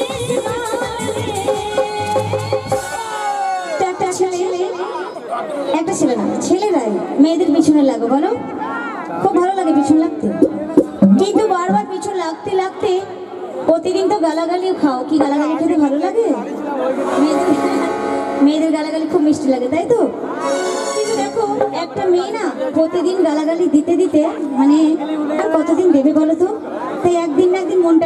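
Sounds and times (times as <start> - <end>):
woman singing through loudspeakers: 0.0 - 3.1.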